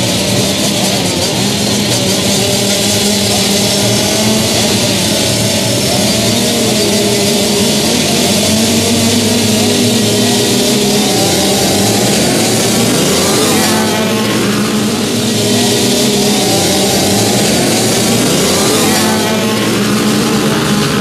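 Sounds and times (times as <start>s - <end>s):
motocross bikes revving: 0.0s - 21.0s.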